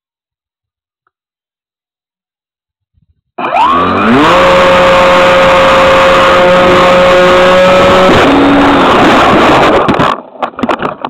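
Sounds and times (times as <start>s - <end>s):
model plane motor whine: 3.4s - 9.8s
wind rushing over microphone: 5.6s - 11.0s
knocks and rustles: 9.8s - 11.0s.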